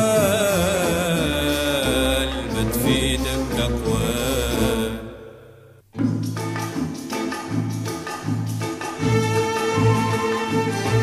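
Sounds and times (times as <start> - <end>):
steady musical accompaniment: 0.0 - 11.0.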